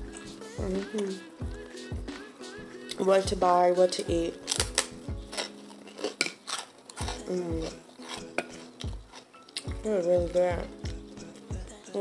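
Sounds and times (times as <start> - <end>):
knife and fork scraping a plate: 5.3 - 9.6.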